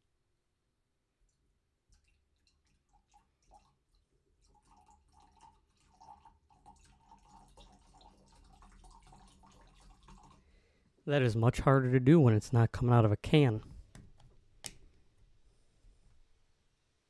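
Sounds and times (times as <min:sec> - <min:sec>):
juice trickling into a glass: 0:01.9 - 0:10.8.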